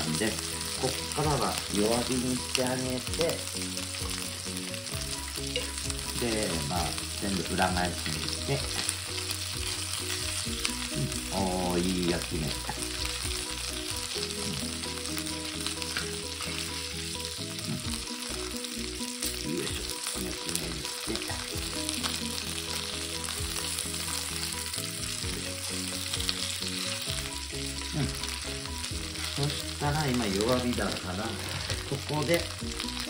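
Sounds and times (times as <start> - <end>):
chicken sizzling in frying pan: 0.0 - 33.0.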